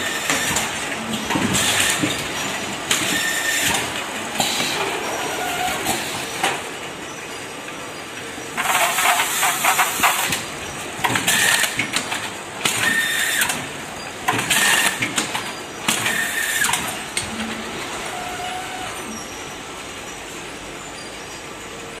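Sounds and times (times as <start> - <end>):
steady machinery hum: 0.0 - 22.0.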